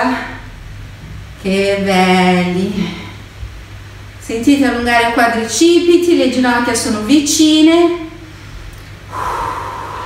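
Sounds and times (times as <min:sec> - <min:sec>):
woman exhaling through pursed lips: 0:09.1 - 0:10.0.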